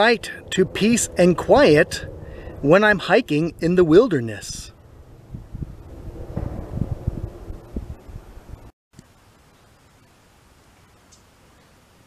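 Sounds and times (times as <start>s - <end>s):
wind buffeting microphone: 0.4s - 8.7s.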